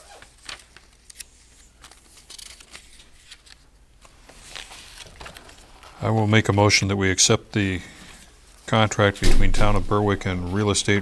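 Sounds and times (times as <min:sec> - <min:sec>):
paper rustling and pages turning: 0:00.0 - 0:06.5.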